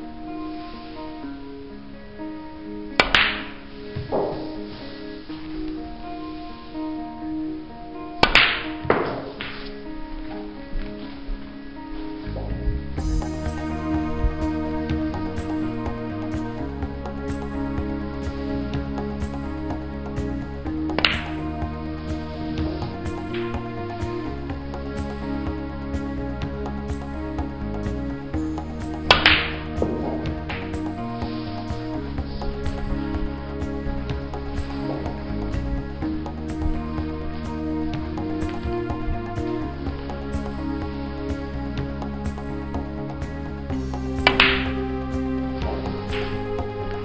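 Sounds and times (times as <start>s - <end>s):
background music with held tones: 0.0s - 47.0s
cue striking ball: 3.0s - 4.6s, 8.2s - 9.7s, 20.9s - 21.5s, 29.0s - 33.3s, 34.6s - 35.4s, 44.2s - 44.9s, 45.6s - 46.5s
cue striking ball click: 3.0s - 4.6s, 21.0s - 21.4s, 29.1s - 30.8s, 44.3s - 44.8s
billiard balls clicking together: 21.0s - 21.4s.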